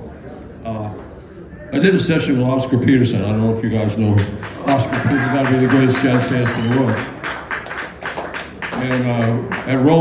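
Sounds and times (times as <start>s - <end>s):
man talking: 1.8s - 7.1s, 8.7s - 10.0s.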